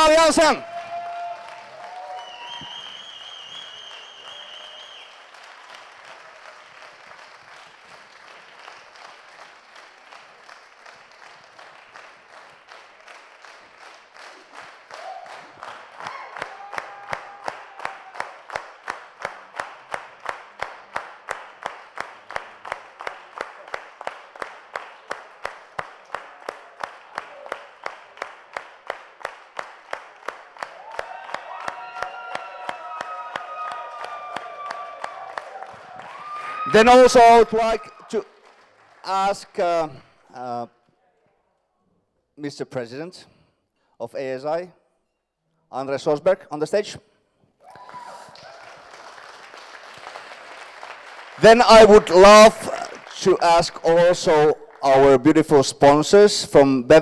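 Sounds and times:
audience applause: 0.0 - 39.8, 47.6 - 55.0
close hand claps: 0.0 - 39.9, 47.6 - 54.8.

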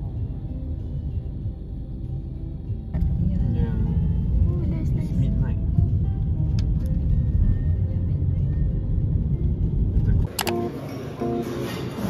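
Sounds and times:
background music: 0.0 - 12.0
car cabin road rumble: 2.8 - 11.2.

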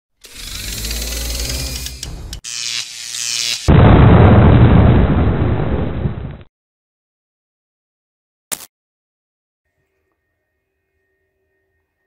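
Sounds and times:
explosion-like boom with rumble: 3.7 - 6.5.

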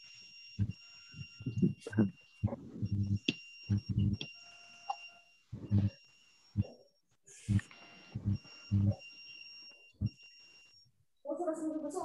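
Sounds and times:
voices over a video call: 1.2 - 4.2, 11.2 - 12.0.

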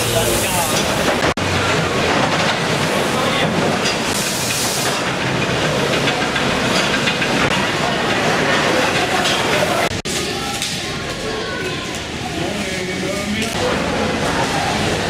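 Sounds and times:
conveyor rattling crates: 0.0 - 10.3
busy hall noise: 0.0 - 15.0.

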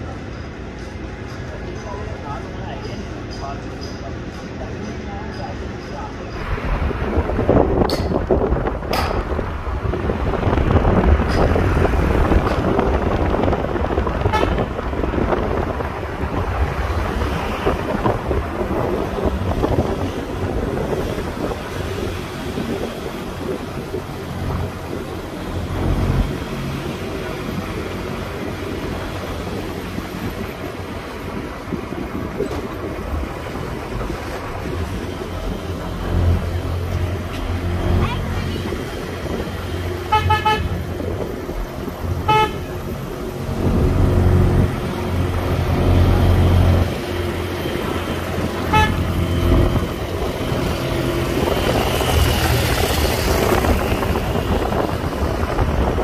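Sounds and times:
car engine and road rumble: 0.0 - 56.0
vehicle horn beeping: 14.2 - 14.7, 40.0 - 40.9, 42.2 - 42.9, 48.6 - 49.2.

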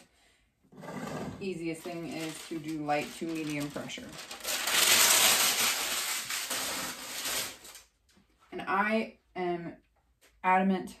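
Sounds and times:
paper rustling and crinkling: 1.7 - 8.2.

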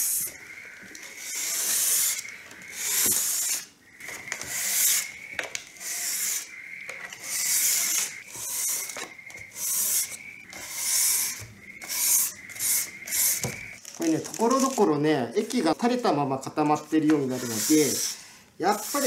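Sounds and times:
sandpaper rubbing on wood: 17.2 - 19.0.

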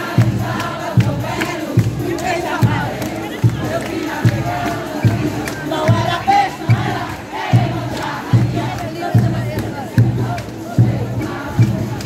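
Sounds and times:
bass drum beat: 0.0 - 12.0
crowd singing along: 0.0 - 12.0.

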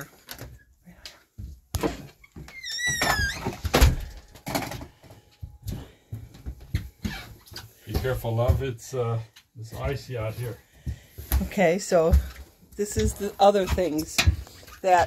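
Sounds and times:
door creaking: 1.8 - 5.0.

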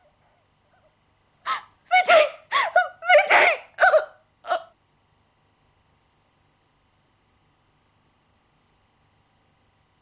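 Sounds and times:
person crying out: 1.5 - 4.7.

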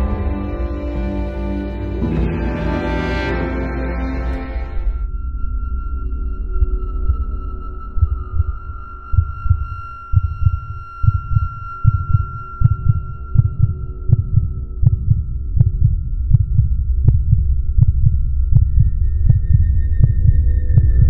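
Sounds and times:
low throbbing pulse: 0.0 - 21.0
steady high drone: 0.0 - 21.0.

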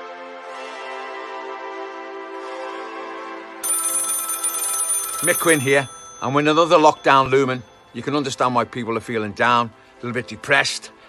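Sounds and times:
telephone ringing: 3.6 - 8.1.

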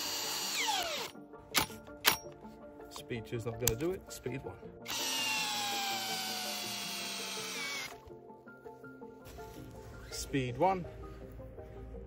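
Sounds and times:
cordless drill motor whine: 0.0 - 1.2, 4.9 - 8.0.

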